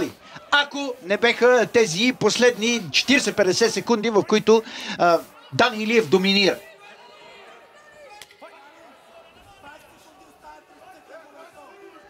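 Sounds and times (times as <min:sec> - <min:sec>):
crowd voices and shouts: 0:00.0 - 0:12.0.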